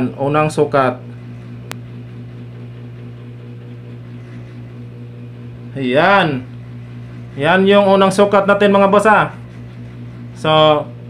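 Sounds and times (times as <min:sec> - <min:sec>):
electrical hum of appliance: 0:00.0 - 0:11.0.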